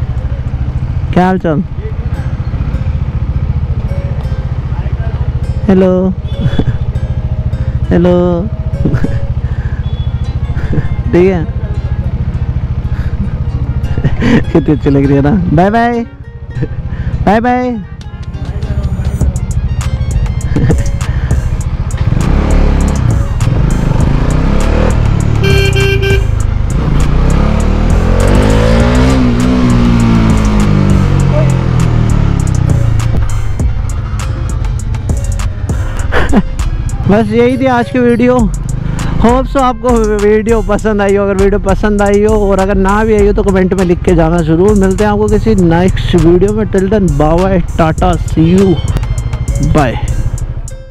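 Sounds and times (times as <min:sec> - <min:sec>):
motorcycle engine idling: 0:00.0 - 0:50.9
background music: 0:10.7 - 0:50.9
horn: 0:25.4 - 0:26.4.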